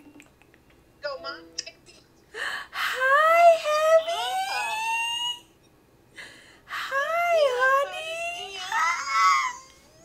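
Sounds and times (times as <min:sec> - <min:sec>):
high-pitched voice squealing: 0:03.0 - 0:05.5, 0:06.9 - 0:10.0.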